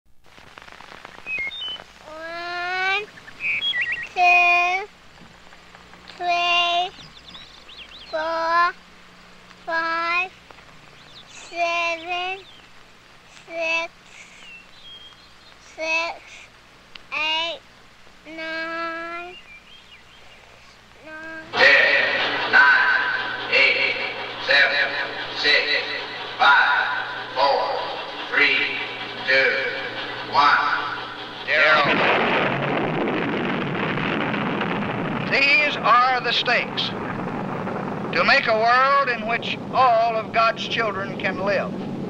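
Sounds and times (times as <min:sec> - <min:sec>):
birds chirping: 0:01.0 - 0:16.6, 0:18.3 - 0:31.9
girl speaking: 0:02.0 - 0:03.1, 0:04.1 - 0:04.9, 0:06.2 - 0:07.0, 0:08.1 - 0:08.8, 0:09.7 - 0:10.4, 0:11.3 - 0:12.5, 0:13.4 - 0:14.3, 0:15.7 - 0:16.5, 0:17.1 - 0:17.6, 0:18.3 - 0:19.4, 0:21.0 - 0:21.5
man's loud echoing voice counting: 0:21.5 - 0:31.9.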